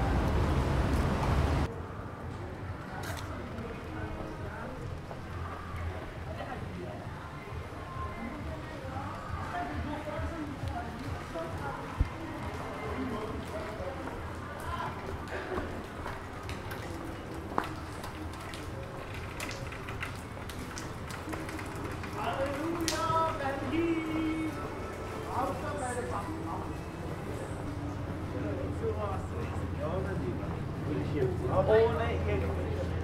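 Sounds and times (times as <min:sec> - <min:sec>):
indistinct voices of passers-by: 0:00.0 - 0:33.0.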